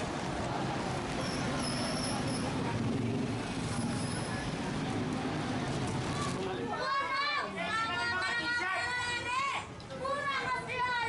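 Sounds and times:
busy city street traffic: 0:00.0 - 0:11.0.

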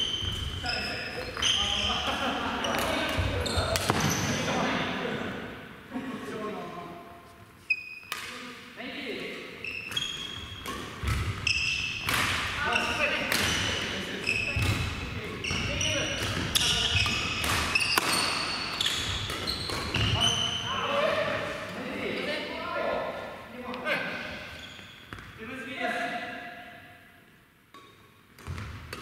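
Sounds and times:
shoe squeaks: 0:00.0 - 0:04.6, 0:07.6 - 0:08.2, 0:09.6 - 0:12.0, 0:12.6 - 0:14.7, 0:15.4 - 0:21.0, 0:24.1 - 0:25.2
racket striking shuttlecock: 0:09.9 - 0:11.4, 0:12.0 - 0:12.6, 0:16.2 - 0:20.0.

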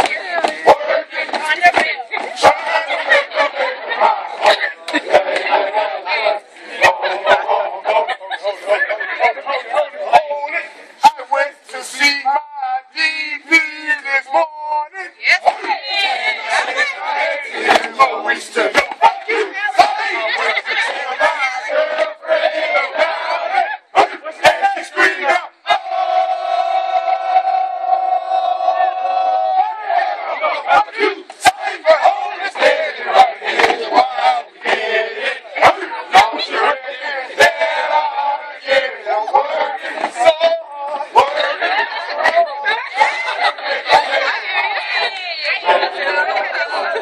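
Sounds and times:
crowd chatter: 0:00.0 - 0:47.0
men shouting and chanting: 0:00.0 - 0:47.0.

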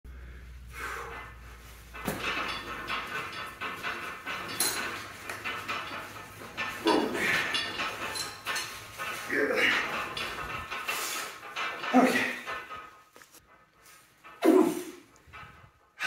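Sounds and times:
knocks bumps and rustling: 0:01.0 - 0:13.5.

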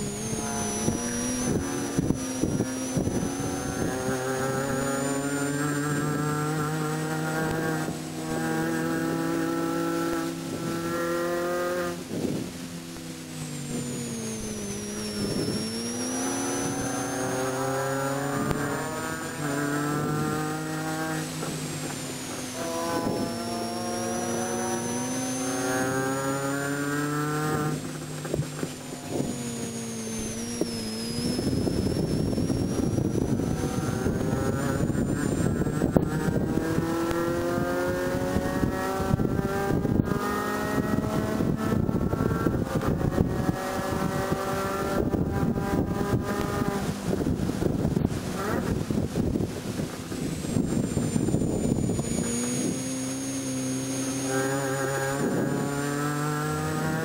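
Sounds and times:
gear shift: 0:00.0 - 0:41.8
car engine revving: 0:00.0 - 0:57.0
wind and road noise: 0:00.0 - 0:57.0.

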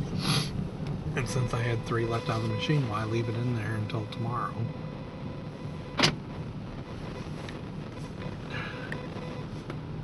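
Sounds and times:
car running noise from inside: 0:00.0 - 0:10.0.

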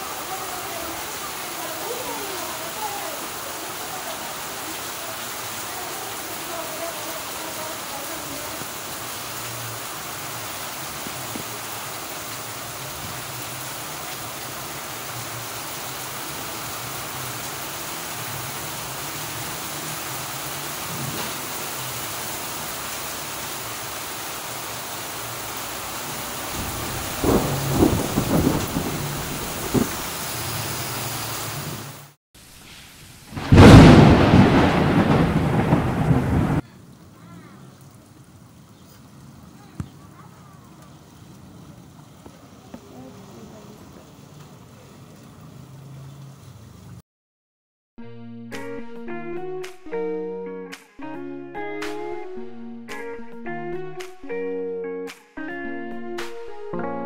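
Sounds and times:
heavy rain on street and roofs: 0:00.0 - 0:47.0.

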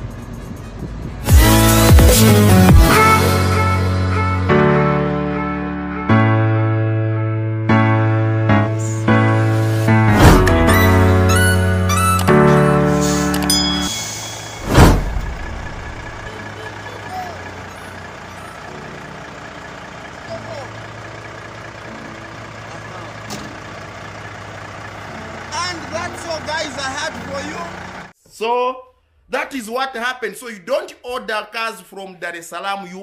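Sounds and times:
music: 0:00.0 - 0:14.9
truck diesel engine idling: 0:08.5 - 0:28.2
man's voice: 0:25.5 - 0:33.0.

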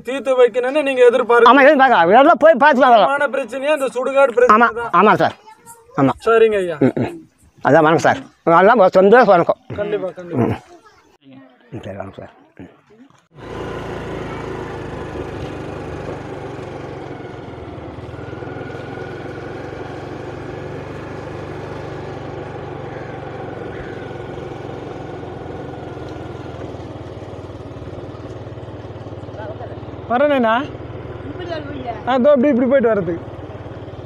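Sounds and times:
motorcycle engine running: 0:13.2 - 0:34.0.

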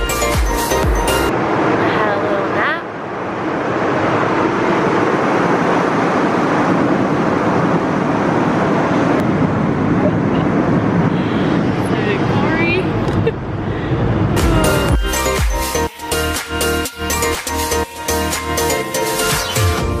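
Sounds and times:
jet airliner cabin noise: 0:01.3 - 0:16.0.

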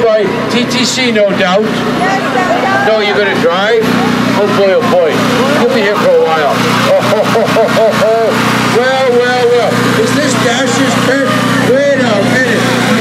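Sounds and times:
engine hum: 0:00.0 - 0:13.0
crowd shouting: 0:01.7 - 0:13.0.

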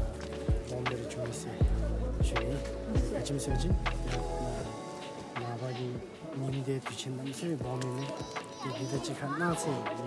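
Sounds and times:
background music: 0:00.0 - 0:10.0
man talking: 0:00.4 - 0:04.7, 0:05.3 - 0:10.0.

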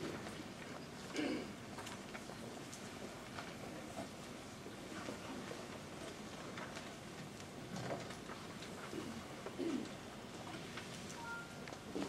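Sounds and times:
small clicks and rustles: 0:01.7 - 0:12.0.

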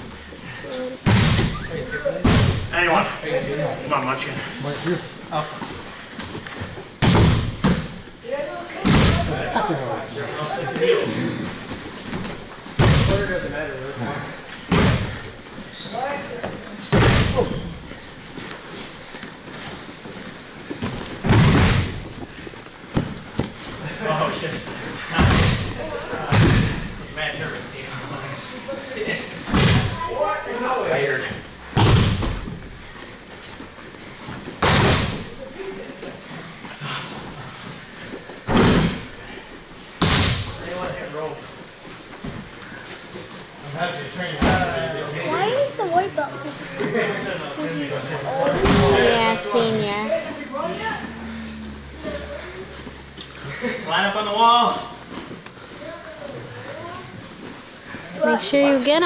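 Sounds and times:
bodies slamming onto mats: 0:01.1 - 0:01.5, 0:07.0 - 0:08.0, 0:20.8 - 0:22.2, 0:25.1 - 0:27.0, 0:29.5 - 0:30.0, 0:31.7 - 0:32.8, 0:34.6 - 0:35.3, 0:38.4 - 0:39.2, 0:40.0 - 0:40.6.

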